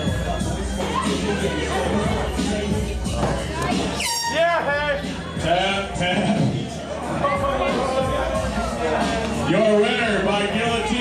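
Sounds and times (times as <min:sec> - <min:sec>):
bar music: 0:00.0 - 0:11.0
crowd chatter: 0:00.0 - 0:11.0.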